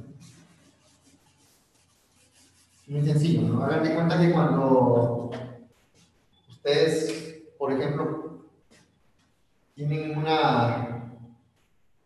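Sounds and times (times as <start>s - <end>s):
whiteboard eraser rubbing: 0.0s - 4.4s, 5.0s - 7.2s.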